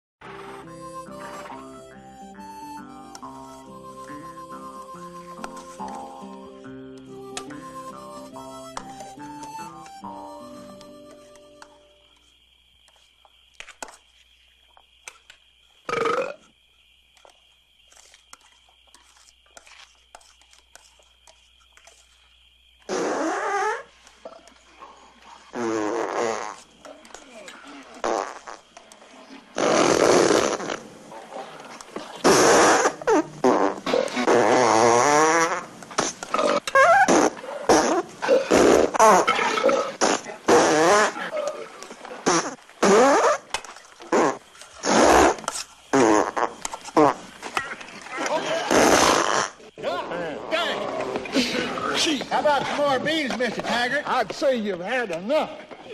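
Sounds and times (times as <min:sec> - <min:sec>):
loud drawn-out farts: 0:22.9 - 0:23.9, 0:25.5 - 0:26.6, 0:28.0 - 0:28.6, 0:29.6 - 0:30.8, 0:32.2 - 0:41.3, 0:42.2 - 0:43.5, 0:44.1 - 0:47.2, 0:48.6 - 0:49.6.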